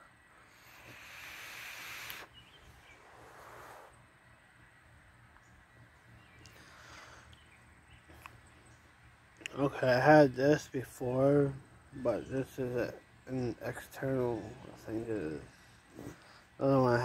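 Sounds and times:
breathy exhale: 0.4 - 2.3, 6.5 - 7.3
hiss of air through vape: 0.4 - 4.0.

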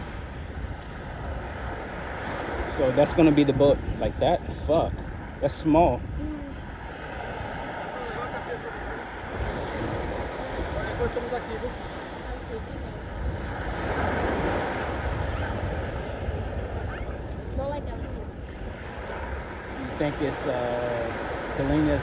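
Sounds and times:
small waves breaking on sand: 0.0 - 22.0
wind rumbling on microphone: 0.0 - 22.0.

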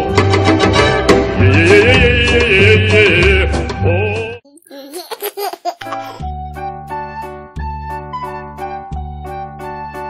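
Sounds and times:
baby laughing: 4.5 - 6.2
keyboard music: 5.4 - 10.0.

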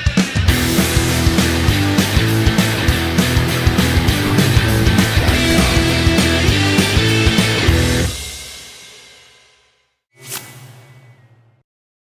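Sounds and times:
low rumble: 3.4 - 6.8
whoosh transition: 4.0 - 6.7.

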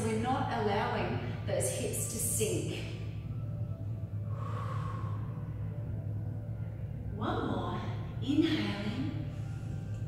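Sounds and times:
steady low hum: 0.0 - 10.0
soft exhaled breath: 4.3 - 5.4.

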